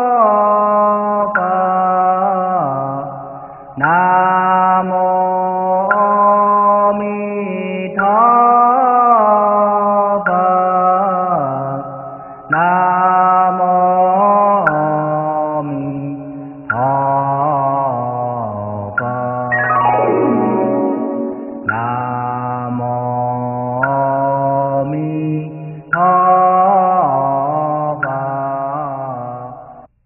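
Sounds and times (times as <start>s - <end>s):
slow chant in long held notes: 12.5s - 29.6s.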